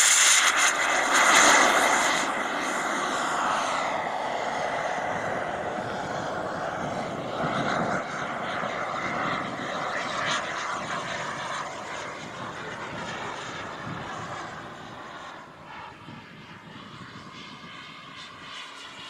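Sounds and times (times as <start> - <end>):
model jet turbine rushing: 0.0 - 19.0.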